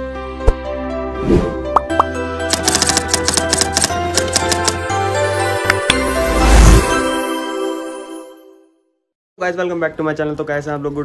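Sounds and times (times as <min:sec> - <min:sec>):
background music: 0:00.0 - 0:08.9
keyboard typing clicks: 0:01.8 - 0:04.8.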